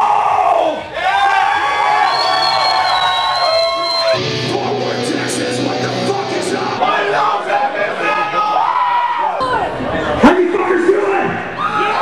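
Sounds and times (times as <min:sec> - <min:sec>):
heavy metal band playing: 0:04.1 - 0:07.9
wavering guitar notes ringing: 0:04.2 - 0:06.9.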